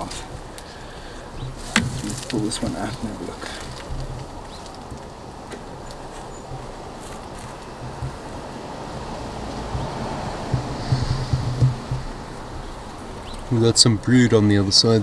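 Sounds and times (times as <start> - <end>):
light clicks of wood and metal: 0.0 - 13.5
honeybees humming: 0.0 - 15.0
hive tool prying a frame: 1.4 - 3.0.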